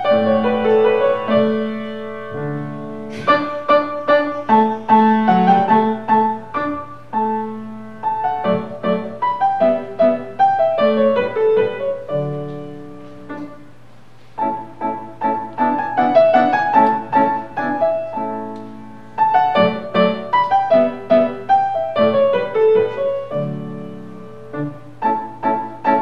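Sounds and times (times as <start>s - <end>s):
solo grand piano piece: 0.0s - 26.0s.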